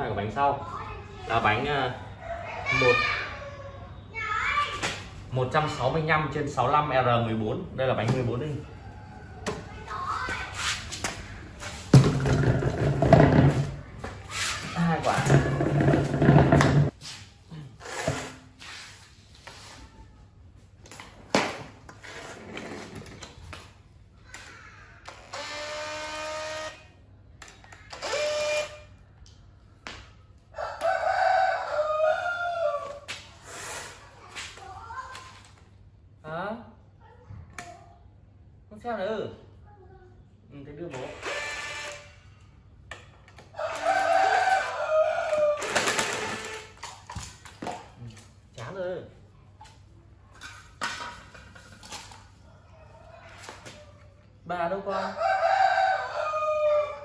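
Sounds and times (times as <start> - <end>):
impact wrench running: 25.1 - 26.8, 41.0 - 42.2.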